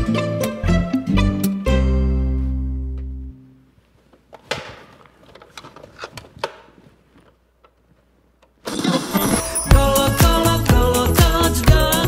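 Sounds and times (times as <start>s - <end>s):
loud pop music from cassette player: 8.7s - 12.0s.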